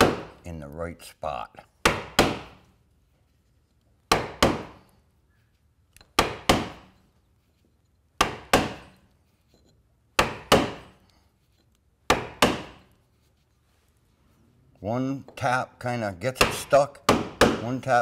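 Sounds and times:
mallet tapping caulking iron: 0:04.1 - 0:04.8, 0:06.0 - 0:07.0, 0:08.2 - 0:09.0, 0:10.2 - 0:11.0, 0:12.1 - 0:12.9, 0:16.3 - 0:17.8.

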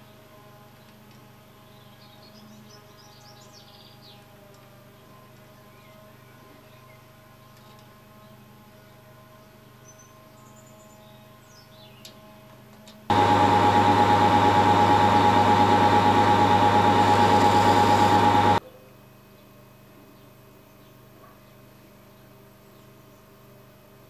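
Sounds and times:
lathe running with whine: 0:13.1 - 0:18.6.

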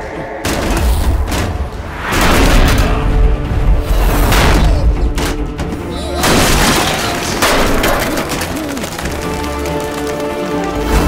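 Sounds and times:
crash with splintering debris: 0:06.2 - 0:09.2.

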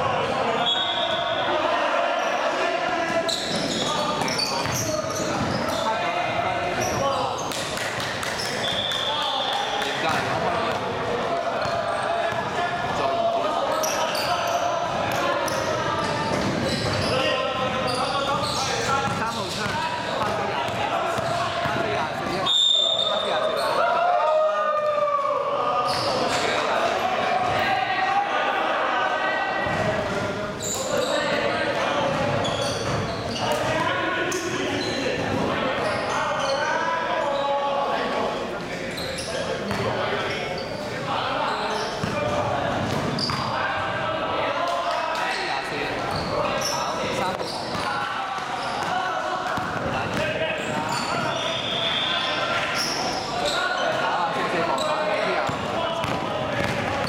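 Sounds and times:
players shouting and chatter: 0:00.0 - 0:57.0
referee's whistle: 0:00.6 - 0:01.5, 0:08.5 - 0:10.1, 0:22.4 - 0:23.7, 0:50.9 - 0:53.6
basketball bouncing on court: 0:03.5 - 0:05.6, 0:17.7 - 0:22.4, 0:49.6 - 0:51.0, 0:55.4 - 0:57.0.

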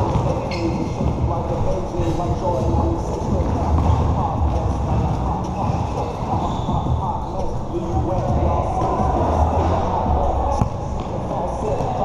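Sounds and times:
basketball bouncing on hard court: 0:00.0 - 0:01.3
players' voices: 0:00.0 - 0:12.0.

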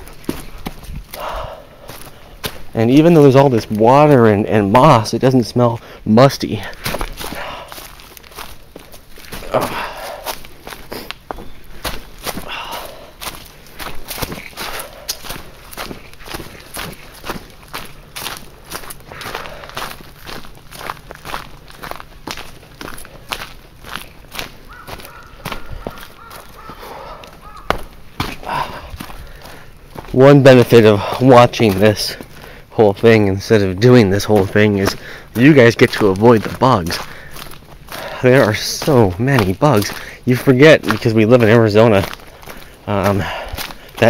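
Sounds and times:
footsteps on dry leaves: 0:00.0 - 0:44.0
heavy breathing: 0:00.4 - 0:02.7, 0:05.8 - 0:20.2, 0:25.0 - 0:30.1, 0:30.9 - 0:31.3, 0:32.1 - 0:32.8, 0:34.9 - 0:35.4, 0:37.0 - 0:38.4, 0:39.9 - 0:40.3, 0:42.2 - 0:44.0.

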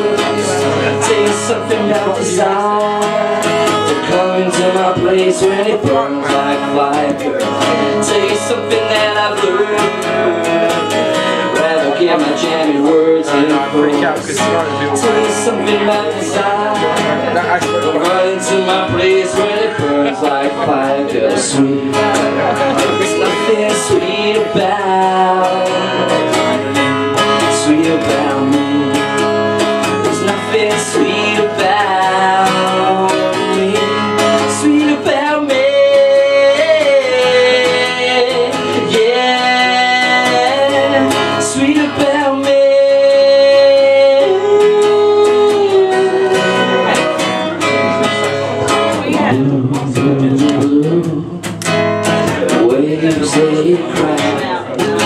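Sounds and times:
acoustic guitar: 0:00.0 - 0:55.0
person singing: 0:00.0 - 0:55.0.

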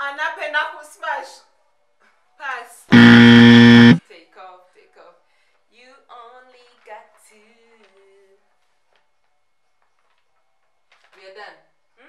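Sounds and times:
game show buzzer: 0:02.9 - 0:04.0.

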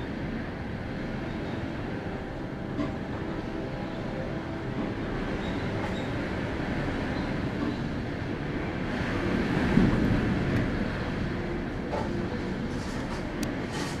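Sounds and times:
strong wind gusting through trees: 0:00.0 - 0:14.0.

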